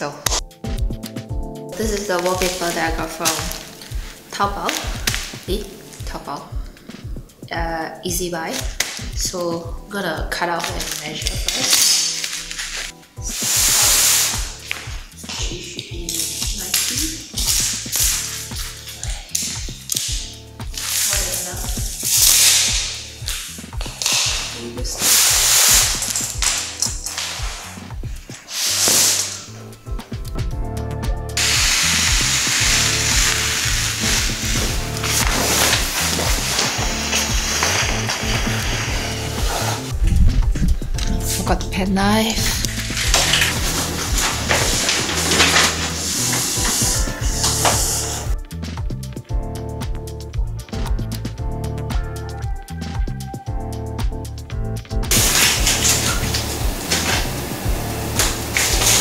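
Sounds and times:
background music: 0.0 - 59.0
wallpaper rustling swishes: 10.5 - 15.6, 24.0 - 29.6, 31.4 - 40.0, 42.4 - 48.4.

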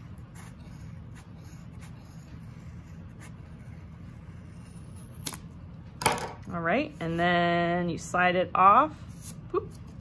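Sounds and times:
steady low hum: 0.0 - 10.0
scissors snipping yarn: 5.2 - 5.4.

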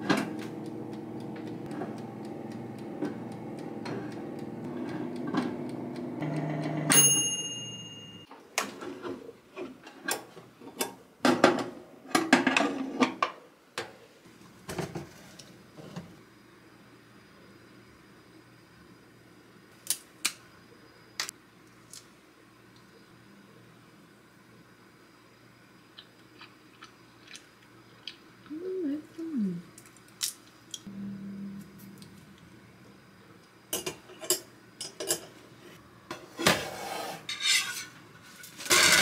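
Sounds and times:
air fryer motor and fan hum: 0.0 - 12.6, 27.1 - 39.0
timer bell ding: 6.2 - 8.3.

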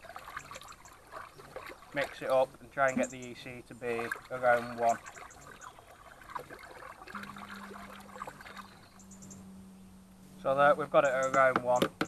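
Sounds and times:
water stirred by hand in tub: 0.0 - 9.4
low steady hum: 0.0 - 12.0.

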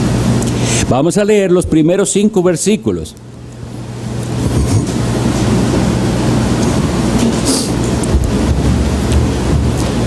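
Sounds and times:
electrical hum: 0.0 - 10.0
low rumbling background noise: 0.0 - 10.0.

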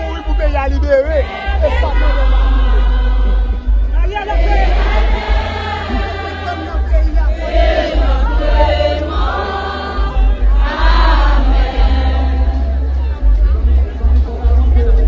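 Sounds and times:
music with heavy bass: 0.0 - 15.0
group of voices singing: 0.9 - 15.0.

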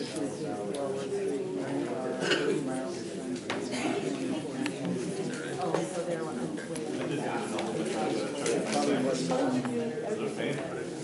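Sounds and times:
low indistinct conversation: 0.0 - 11.0.

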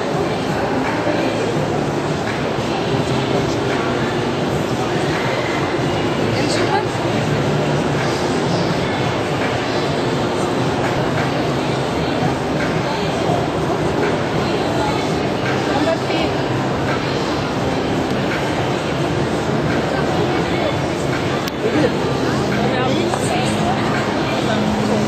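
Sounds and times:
indistinct voices: 0.0 - 25.0
loud background din: 0.0 - 25.0.

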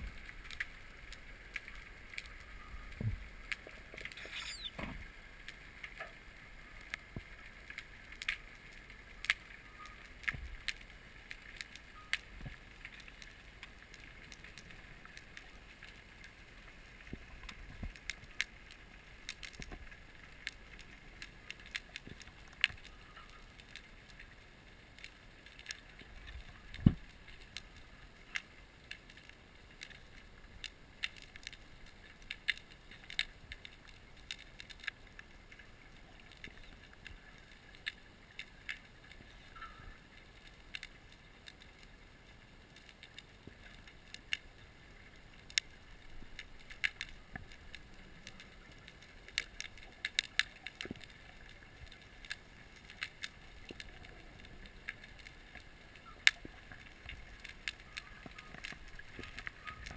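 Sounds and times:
faint underwater hiss: 0.0 - 59.9
sharp clicks and crackles: 0.0 - 59.9.

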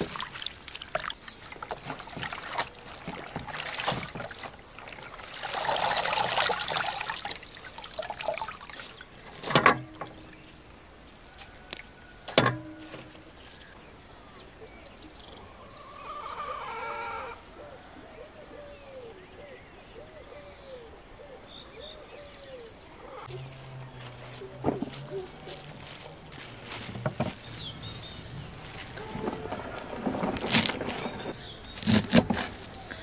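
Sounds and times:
hands splashing leaves in water: 0.0 - 9.5
water sloshing: 0.0 - 10.6, 23.4 - 33.0
bird calling: 13.4 - 33.0.

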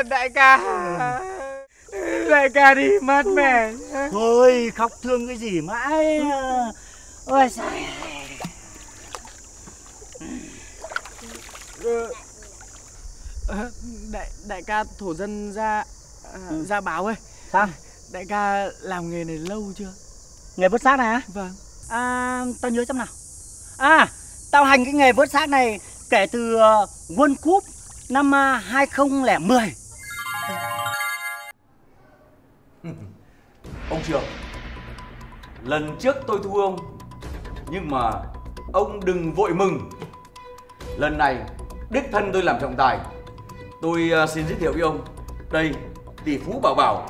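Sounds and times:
small water splashes: 6.8 - 13.0, 27.5 - 28.3
water sloshing and lapping: 6.8 - 13.0, 27.5 - 28.2
cascade of bright chimes: 30.0 - 31.5.

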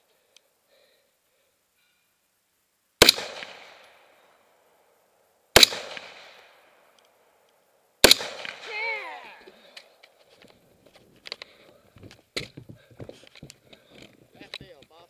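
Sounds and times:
gunshot echo: 3.0 - 4.1, 5.6 - 6.6, 8.0 - 9.0
rifle shots: 3.0 - 4.1, 5.5 - 6.7, 8.0 - 9.2.

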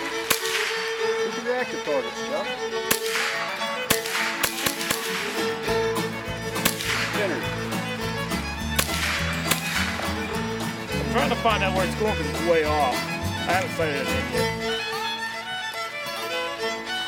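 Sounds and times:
country song with fiddle: 0.0 - 17.0
rifle shots: 0.1 - 1.2, 2.8 - 5.7, 6.6 - 7.5, 8.8 - 10.4
bass line: 5.7 - 14.7.

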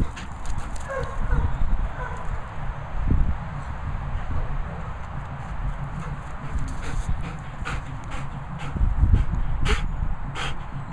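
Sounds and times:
dog panting: 0.0 - 1.0, 5.8 - 10.9
low rumble: 1.5 - 10.9.

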